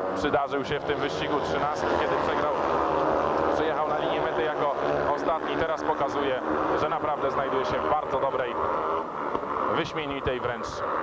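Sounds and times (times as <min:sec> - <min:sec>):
motorcycle engines racing: 0:00.0 - 0:11.0
man talking: 0:00.2 - 0:02.6, 0:03.5 - 0:08.6, 0:09.7 - 0:10.8.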